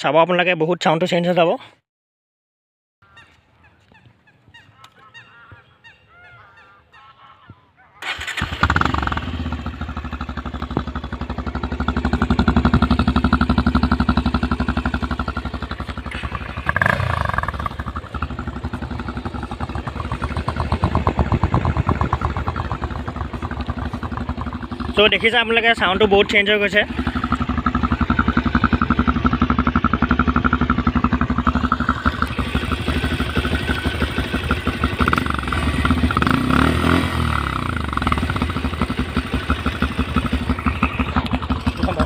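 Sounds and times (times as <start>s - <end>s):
motorcycle engine revving: 8.0s - 42.0s.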